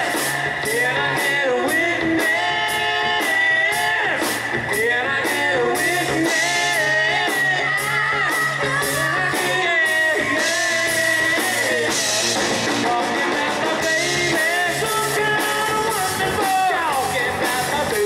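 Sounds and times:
live rock band playing: 0:00.0 - 0:18.0
man singing: 0:00.0 - 0:18.0.

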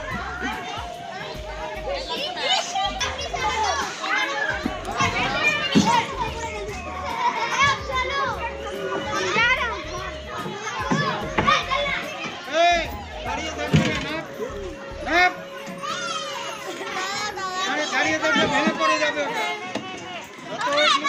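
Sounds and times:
children playing and shouting: 0:00.0 - 0:21.0.

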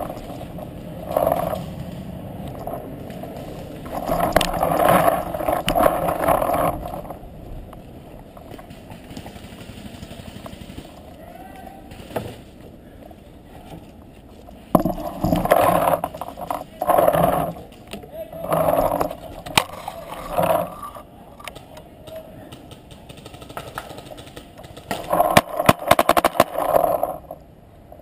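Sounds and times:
rustling scraping movement: 0:00.0 - 0:11.2, 0:11.8 - 0:21.5, 0:23.3 - 0:27.4.

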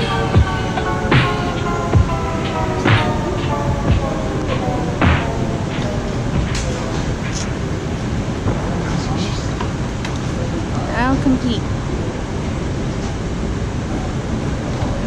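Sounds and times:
held music chord: 0:00.0 - 0:08.4
arrivals hall noise: 0:00.0 - 0:15.0.

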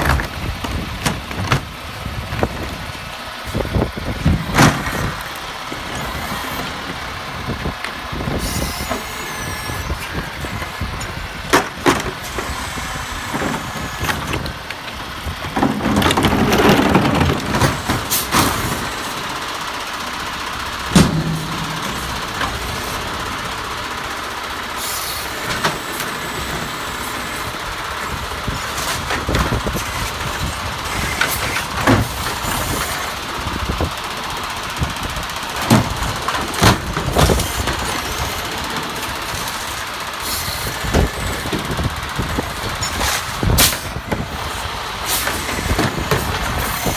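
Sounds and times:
cart banging against hopper: 0:00.0 - 0:01.7, 0:04.1 - 0:05.2, 0:10.4 - 0:19.5, 0:20.7 - 0:23.8, 0:28.6 - 0:34.0, 0:35.5 - 0:39.4, 0:40.6 - 0:46.9
garbage truck running: 0:00.0 - 0:46.9.

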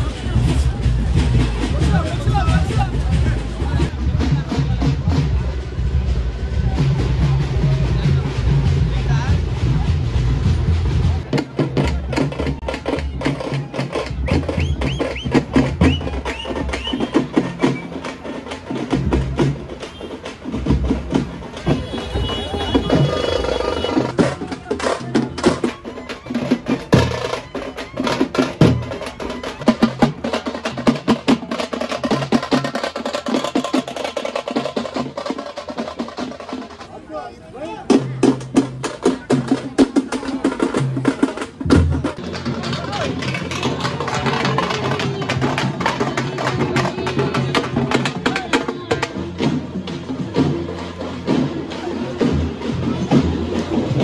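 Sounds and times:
rapid drumming: 0:00.0 - 0:37.1, 0:37.7 - 0:54.0
crowd voices: 0:00.0 - 0:54.0.

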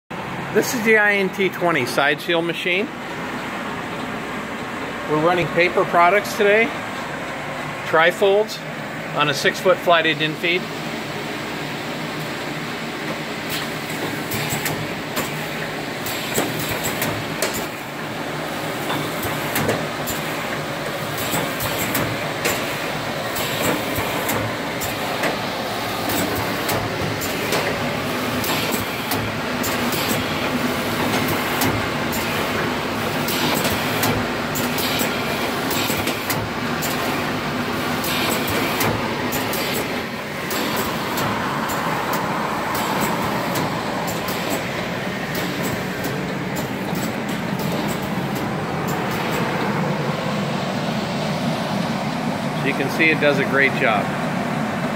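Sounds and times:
machine clattering: 0:13.0 - 0:17.9, 0:18.7 - 0:49.9
sharp clicks and knocks: 0:16.0 - 0:17.8, 0:18.8 - 0:20.3, 0:33.3 - 0:37.1, 0:38.0 - 0:49.8.

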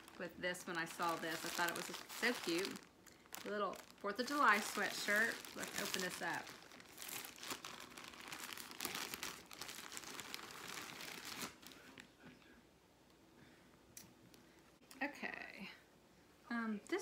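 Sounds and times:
plastic bag crinkling and tearing: 0:00.0 - 0:12.0.

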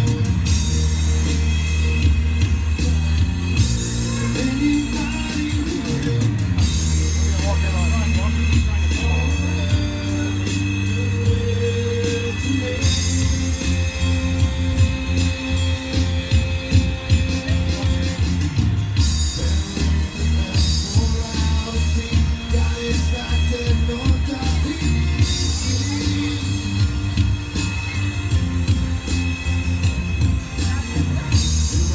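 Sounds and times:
bass guitar: 0:00.0 - 0:31.9
electric guitar: 0:00.0 - 0:31.9
electronic drum kit beat: 0:00.0 - 0:31.9
strummed acoustic guitar: 0:00.0 - 0:31.9.

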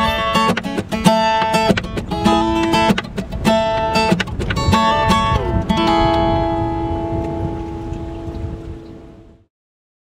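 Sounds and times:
acoustic guitar chord ringing: 0:00.0 - 0:09.5
low rumbling noise: 0:01.8 - 0:09.5.

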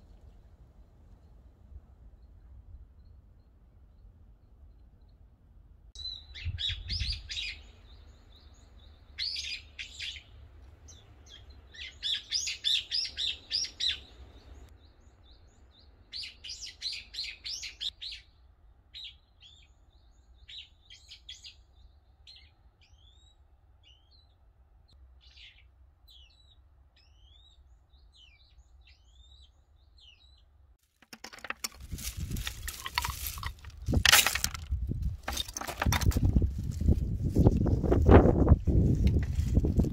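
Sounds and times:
small birds chirping and trilling: 0:06.0 - 0:30.6.

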